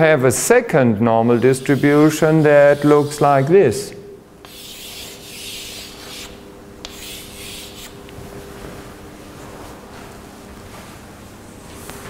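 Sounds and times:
chalk drawing on a blackboard: 0:01.4 - 0:03.3, 0:04.4 - 0:08.0.

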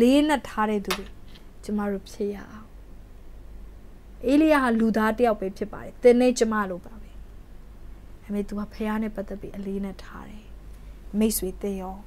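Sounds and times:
woman talking: 0:00.0 - 0:02.7, 0:04.2 - 0:07.2, 0:08.2 - 0:10.5, 0:11.1 - 0:12.0.

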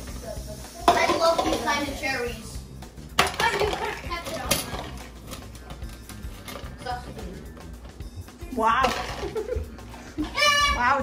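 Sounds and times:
background music: 0:00.0 - 0:11.0
ice cubes clinking in metal bowl: 0:03.2 - 0:06.7, 0:08.8 - 0:09.4.

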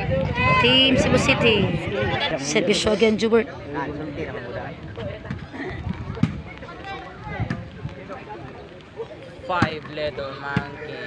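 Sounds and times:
crowd voices and shouts: 0:00.0 - 0:11.0.

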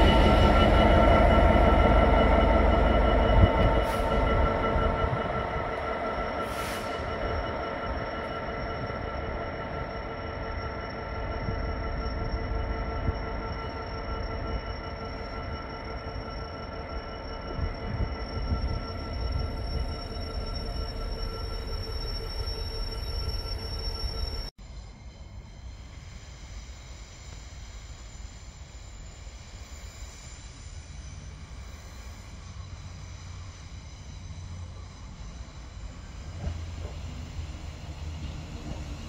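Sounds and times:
train wagons rumbling on rails: 0:00.0 - 0:24.5, 0:31.6 - 0:39.0
high-pitched ringing tones: 0:00.0 - 0:39.0.

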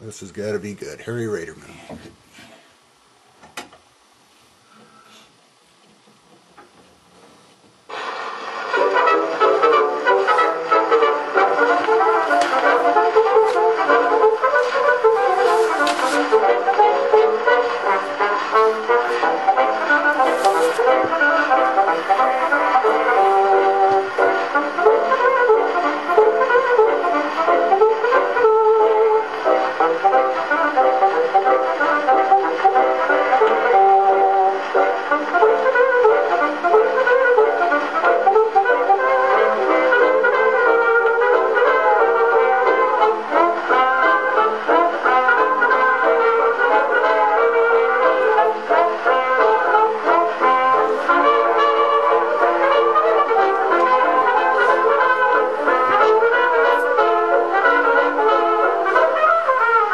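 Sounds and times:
surface hiss: 0:07.2 - 0:59.4
jazz band on old recording: 0:07.3 - 0:59.9
soft scrape: 0:14.6 - 0:16.4, 0:20.2 - 0:20.9.

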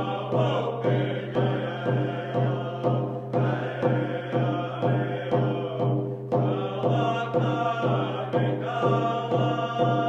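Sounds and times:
frame drum beat: 0:00.0 - 0:10.0
men singing together: 0:00.0 - 0:10.0.

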